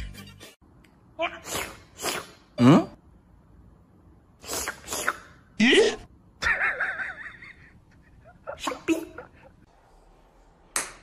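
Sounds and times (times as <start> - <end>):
person sneezing: 1.4 - 3.0, 4.4 - 5.4, 8.6 - 9.2.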